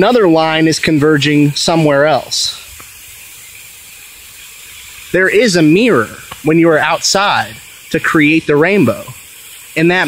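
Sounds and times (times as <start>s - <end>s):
sprinkler spray hissing on grass: 0.0s - 10.0s.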